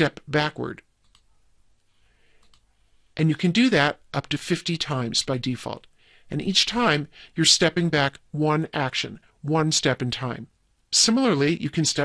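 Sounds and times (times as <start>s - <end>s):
faint clicks: 1.0s - 2.7s.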